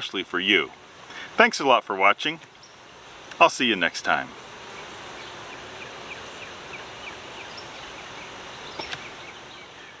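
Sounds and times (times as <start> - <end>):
steady hiss: 0.0 - 10.0
small repeated chirping: 4.7 - 10.0.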